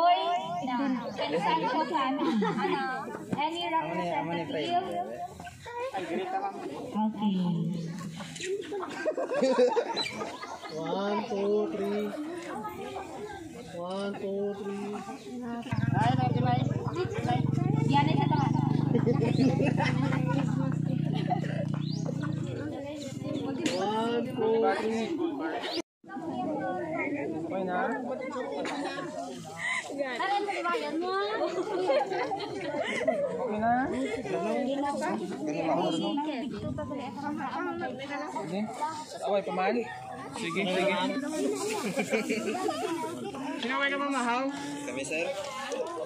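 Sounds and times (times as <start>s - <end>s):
people chattering: 0.0s - 46.0s
people talking: 0.0s - 46.0s.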